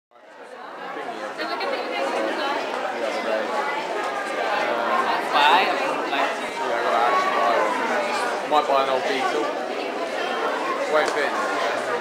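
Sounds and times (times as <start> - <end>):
crowd chatter: 0.1 - 12.0.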